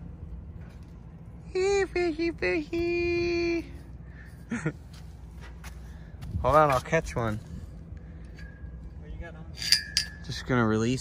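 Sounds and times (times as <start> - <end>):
light metallic clink: 9.5 - 10.6.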